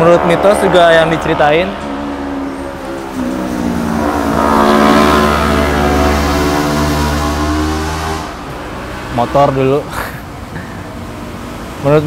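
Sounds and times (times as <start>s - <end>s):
motorcycle passing by: 0.0s - 9.6s.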